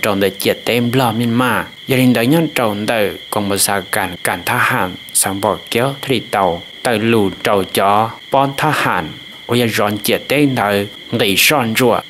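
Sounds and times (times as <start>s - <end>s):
faint high whine: 0.0s - 12.0s
man speaking: 0.0s - 12.0s.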